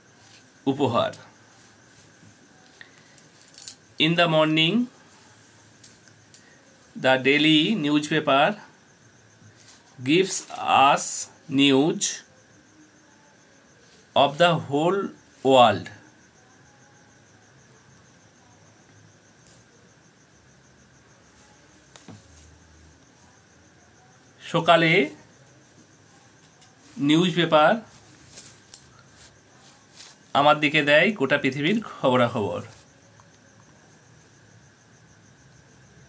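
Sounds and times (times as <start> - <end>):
insect trilling: 0.0 - 36.0.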